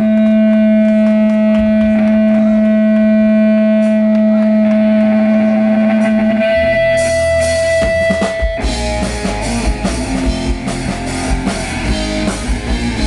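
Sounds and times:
guitar amplifier feedback drone: 0.0s - 13.0s.

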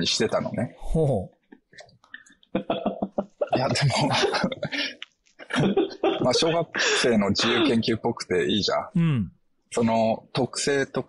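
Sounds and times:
man coughing: 3.4s - 7.9s.

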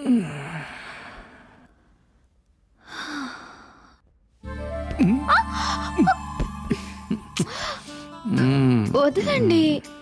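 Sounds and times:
breathy sigh: 2.8s - 4.0s
film background music: 4.4s - 10.0s.

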